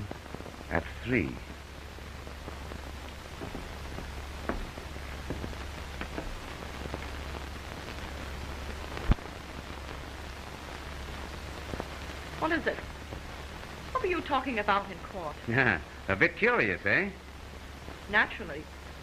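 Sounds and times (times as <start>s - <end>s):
film soundtrack hiss and crackle: 0.0s - 19.0s
low hum: 0.0s - 19.0s
faint clicks: 8.9s - 9.4s.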